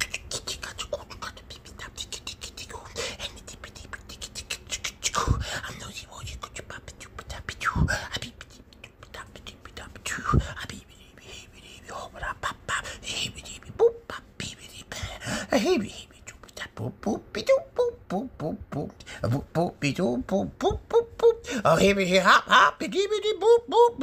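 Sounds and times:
soft murmured vocal sounds: 0.0s - 24.0s
breathy puffs: 14.9s - 15.6s.

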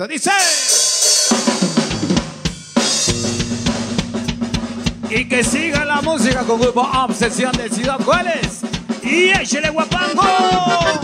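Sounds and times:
live band playing: 0.6s - 11.0s
drum hits: 1.6s - 10.7s
cymbal crash: 2.4s - 8.9s.

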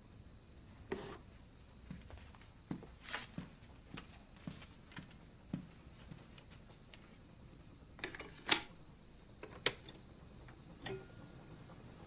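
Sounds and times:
crickets chirping: 0.0s - 12.0s
soft footsteps: 0.8s - 7.8s.

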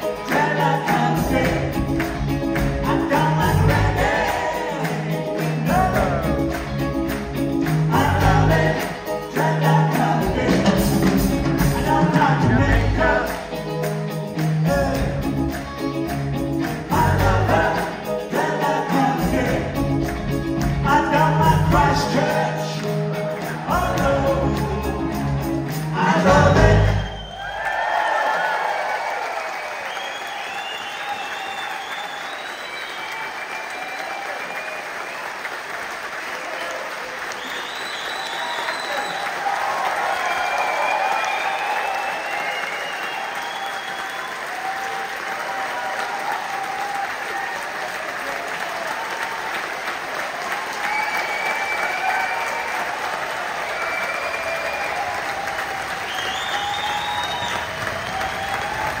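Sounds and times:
audience clapping: 0.0s - 59.0s
audience cheering: 23.4s - 59.0s
whistles from crowd: 26.6s - 28.4s, 29.3s - 35.4s, 36.6s - 45.0s, 50.7s - 52.9s, 53.6s - 59.0s.

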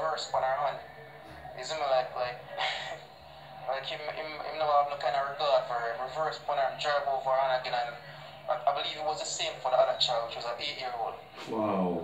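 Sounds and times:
man talking through speaker: 0.0s - 3.0s, 3.6s - 12.0s.

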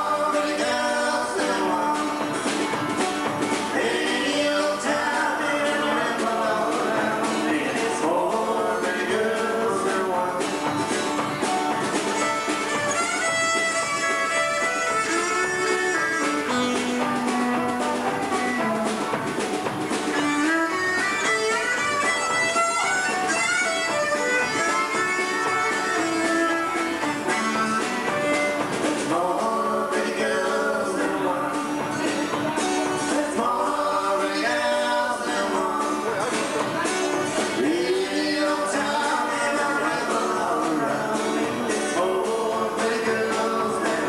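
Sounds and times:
drum kit steady beat: 0.0s - 44.0s
electric and acoustic guitars: 0.0s - 44.0s
live country band playing: 0.0s - 44.0s.

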